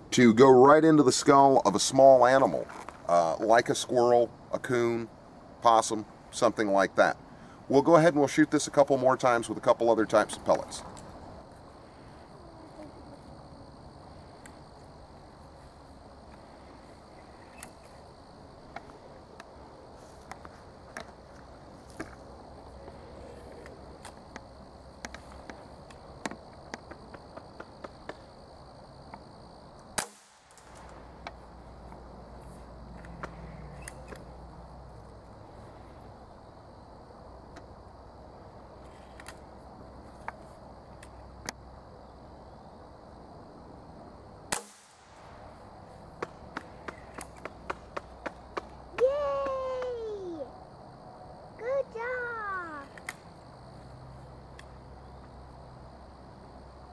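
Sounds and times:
air rifle shots: 30.0s - 30.8s, 44.5s - 45.3s.

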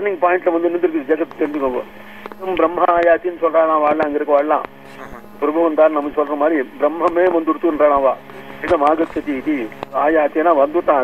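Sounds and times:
man talking: 0.0s - 11.0s
steady low hum: 0.0s - 11.0s.

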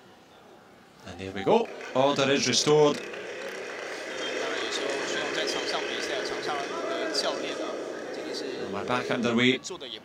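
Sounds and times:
murmur of crowd voices: 0.0s - 10.0s
separate calls from crowd: 1.5s - 9.7s.

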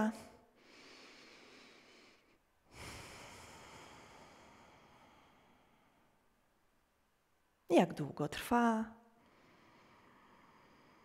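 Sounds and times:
woman breathing through the nose: 0.5s - 6.2s, 9.2s - 11.0s.

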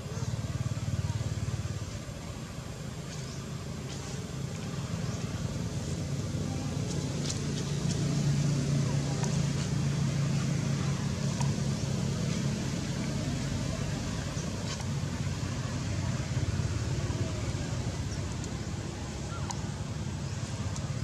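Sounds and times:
motor engine humming: 0.0s - 21.0s.

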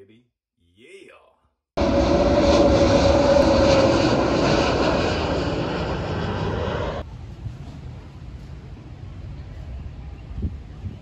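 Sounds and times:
jet airliner passing overhead: 1.8s - 9.7s
faint wind noise: 7.0s - 11.0s.

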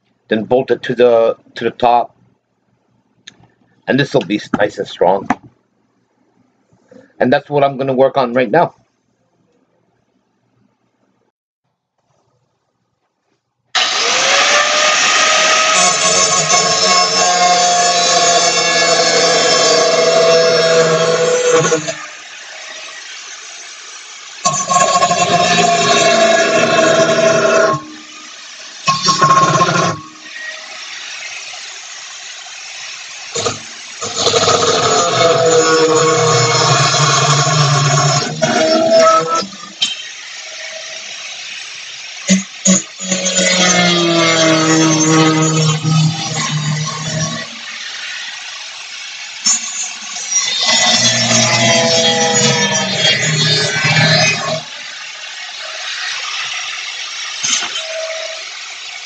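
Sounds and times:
angle grinder cutting steel: 13.8s - 59.0s.

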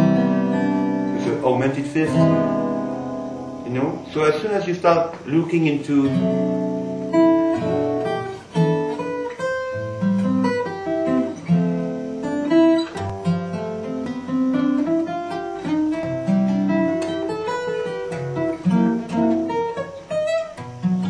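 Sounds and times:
fingerpicked acoustic guitar: 0.0s - 21.0s.

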